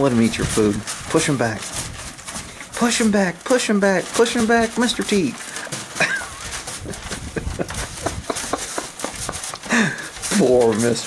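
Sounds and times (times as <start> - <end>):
horse chewing grain: 0.0 - 11.0.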